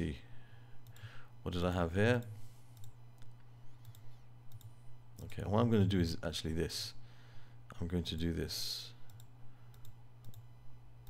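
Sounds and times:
low electrical hum: 0.0s - 11.0s
computer mouse clicks: 2.8s - 5.4s, 9.1s - 10.5s.

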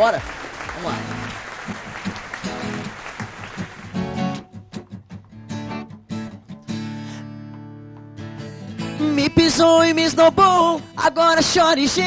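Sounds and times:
acoustic guitars strumming chords: 0.1s - 12.0s.

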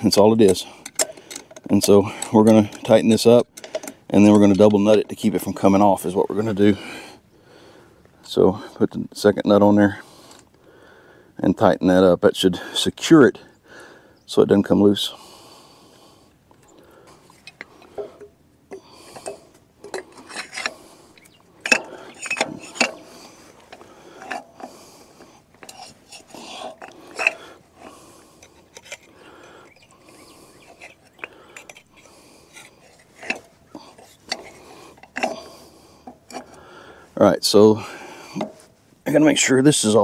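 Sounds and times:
wrench and steel parts clinking: 0.0s - 6.3s, 17.2s - 36.6s.

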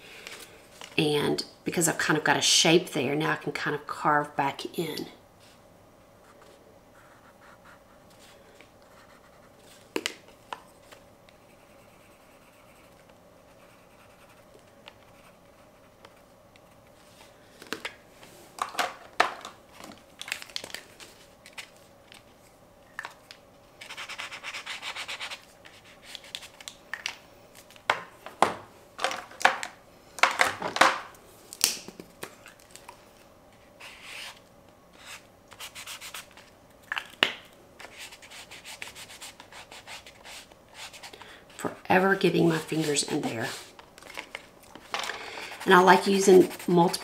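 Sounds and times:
pencil scribbling on paper: 11.4s - 15.9s.

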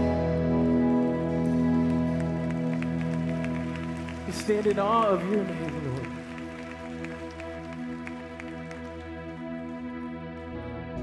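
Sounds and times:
sustained band chords: 0.0s - 11.0s.

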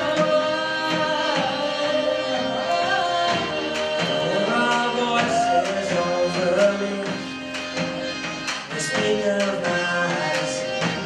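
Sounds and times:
bass: 0.0s - 11.0s
drum kit: 0.0s - 11.0s
harmonium: 0.0s - 11.0s
person singing: 0.0s - 11.0s.

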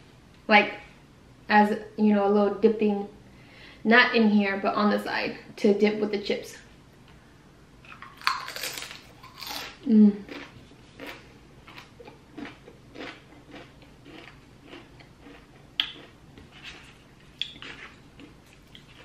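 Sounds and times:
chip crunching: 7.9s - 19.0s.

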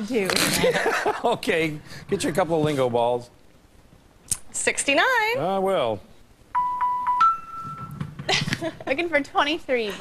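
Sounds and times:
laughter: 0.6s - 1.4s, 8.3s - 8.9s
electronic game-show chime: 6.6s - 8.0s.

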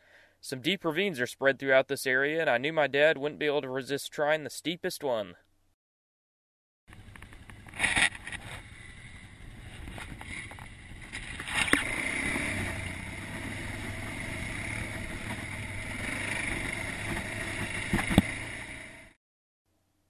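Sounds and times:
atv engine running: 6.9s - 19.2s.

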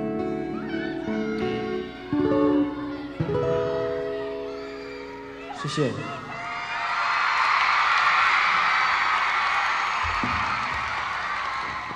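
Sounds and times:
acoustic guitar chords ringing: 0.0s - 5.6s.

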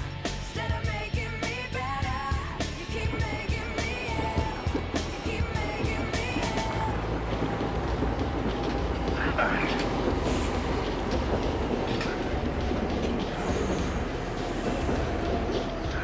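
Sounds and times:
train wheels rumbling on rails: 0.0s - 16.0s.

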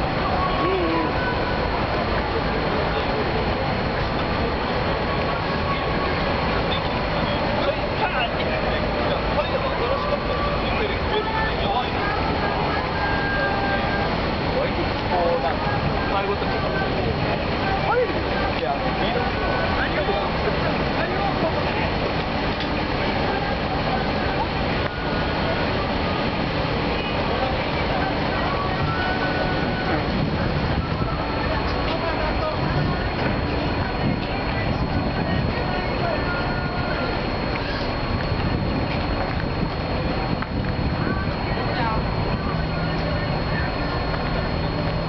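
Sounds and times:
diesel truck engines running: 0.0s - 45.0s
indistinct voices: 0.0s - 45.0s.

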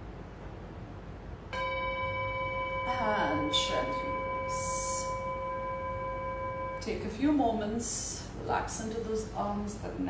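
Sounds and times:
bell-like chime ringing: 1.6s - 6.9s
person speaking: 2.9s - 5.2s.

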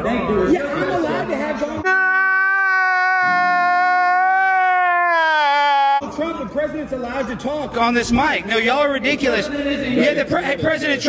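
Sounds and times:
man crying wail: 1.9s - 6.0s.

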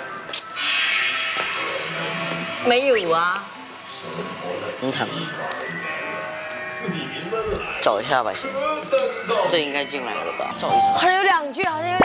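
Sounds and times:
buzzing drone: 0.0s - 11.0s.

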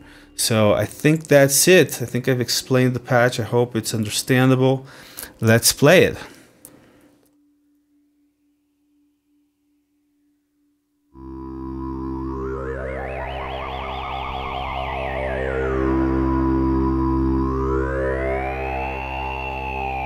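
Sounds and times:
low synthesizer drone: 11.2s - 20.0s
wobbling synthesizer tone: 11.2s - 20.0s.

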